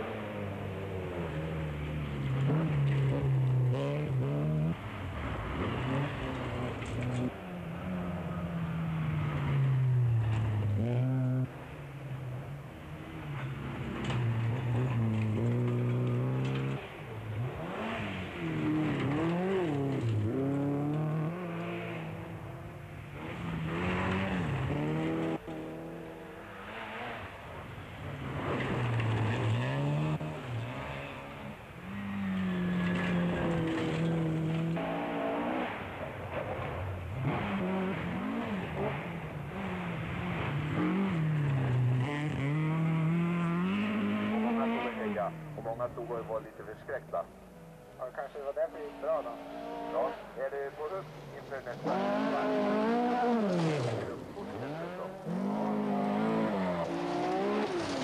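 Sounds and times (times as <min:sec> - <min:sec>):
rally car engines revving: 0:00.0 - 0:58.0.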